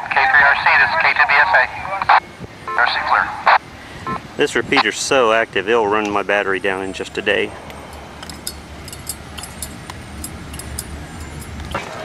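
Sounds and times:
tinny radio voice talking: 0:00.0 - 0:03.6.

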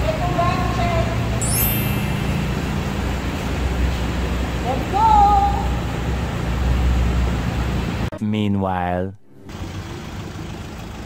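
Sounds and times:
steady low hum: 0:00.0 - 0:08.1
high-pitched sing-song voice calling: 0:01.4 - 0:03.6.

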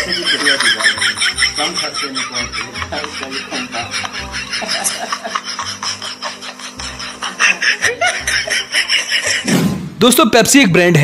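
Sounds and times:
laughter in rapid bursts: 0:00.0 - 0:09.5
background music: 0:00.0 - 0:11.0.

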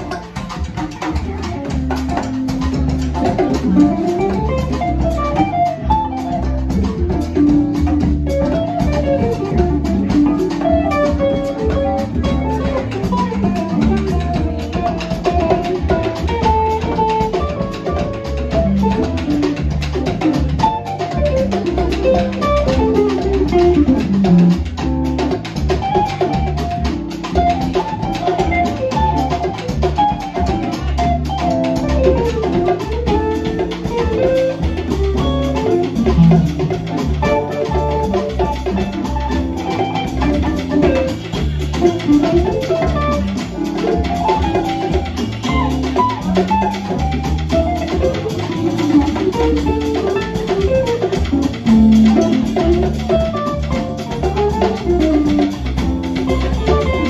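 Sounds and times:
drum kit: 0:00.0 - 0:57.0
keyboard accompaniment: 0:00.0 - 0:57.0
electric guitar solo: 0:27.4 - 0:55.4.

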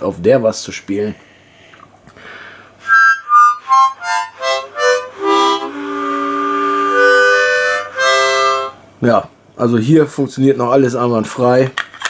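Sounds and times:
harmonica playing: 0:02.8 - 0:08.9.

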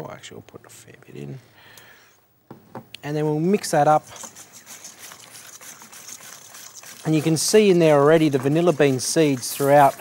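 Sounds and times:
utensil scraping metal bowl: 0:03.2 - 0:10.0.

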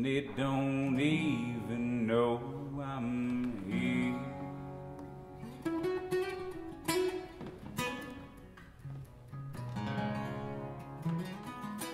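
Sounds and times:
acoustic guitars playing: 0:00.0 - 0:11.9.

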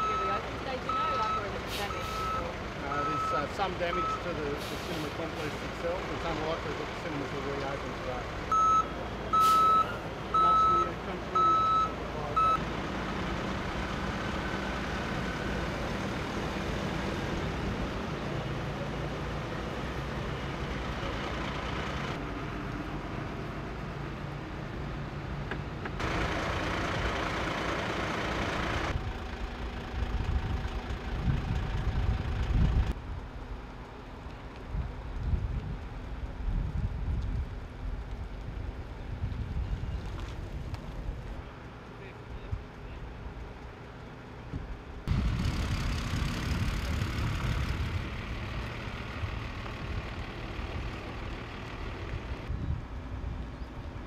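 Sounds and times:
reversing alarm beeping: 0:00.0 - 0:04.4, 0:08.5 - 0:12.6
low rumbles: 0:25.7 - 0:54.0
vehicle engine running: 0:26.0 - 0:34.3, 0:40.2 - 0:52.5.

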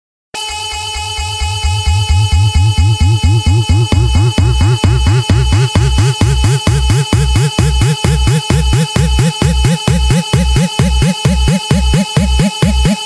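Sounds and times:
held high synth notes: 0:00.4 - 0:13.0
pulsing synth bass: 0:01.2 - 0:13.0
kick drum: 0:01.4 - 0:13.0.

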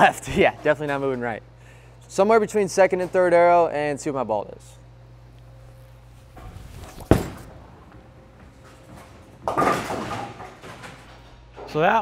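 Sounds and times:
bowling pins clattering: 0:06.3 - 0:11.2
bowling ball thud on lane: 0:06.4 - 0:08.6.

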